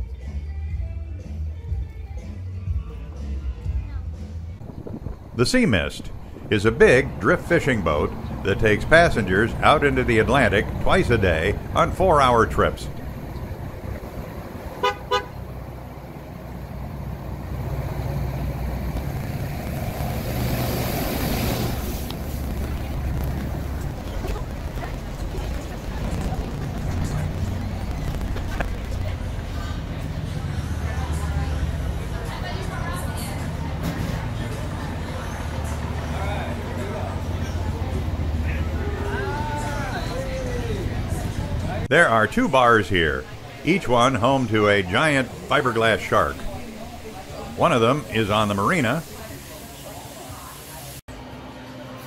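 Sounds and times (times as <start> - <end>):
steady low rumble: 4.4 - 32.8
people talking: 5.4 - 13.1, 22.4 - 51.0
short high horn toot: 14.8 - 15.4
low background rumble: 21.4 - 33.7.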